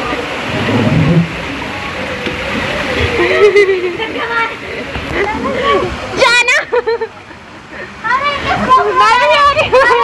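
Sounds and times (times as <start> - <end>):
voices: 0.0 - 10.0
water rushing into slide: 0.0 - 10.0.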